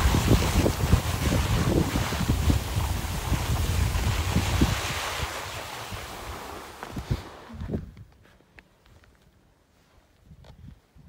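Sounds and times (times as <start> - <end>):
wind buffeting microphone: 0.0 - 8.2
skis sliding over snow: 0.0 - 10.1.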